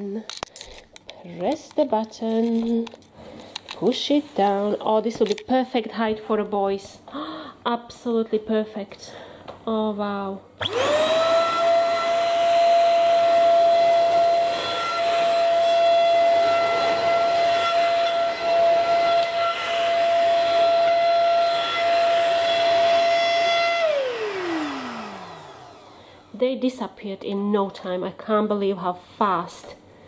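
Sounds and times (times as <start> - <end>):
vacuum motor spinning down: 10.6 - 26.7
stick vacuum cleaner whining: 10.6 - 26.8.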